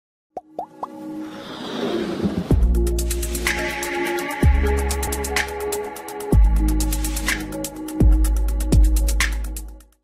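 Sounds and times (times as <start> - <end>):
rising electronic music: 0.5 - 9.8.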